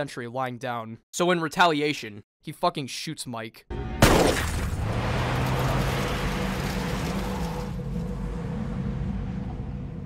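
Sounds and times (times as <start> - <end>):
car engine rumble: 3.7 - 10.0.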